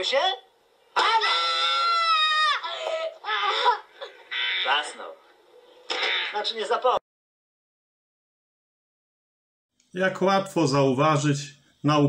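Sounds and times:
boy screaming: 1.0s - 3.8s.

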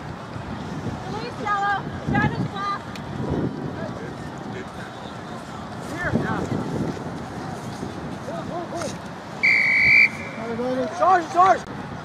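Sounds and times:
referee's whistle blast: 9.4s - 10.5s.

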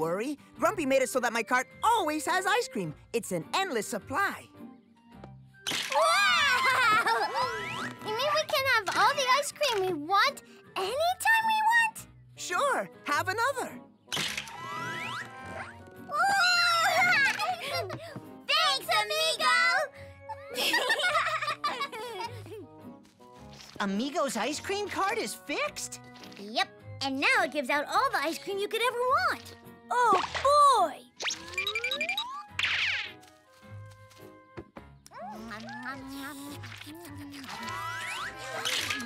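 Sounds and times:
background music: 0.0s - 39.0s
cartoon music: 5.9s - 9.4s, 14.4s - 19.2s, 29.9s - 33.2s, 35.1s - 39.0s.

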